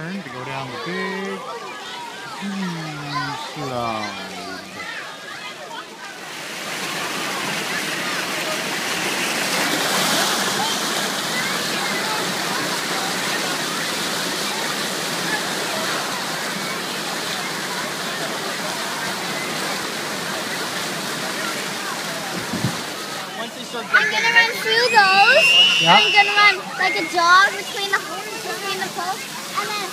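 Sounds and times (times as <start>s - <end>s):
faint children's voices: 0.0s - 29.9s
rushing and splashing water: 0.0s - 29.9s.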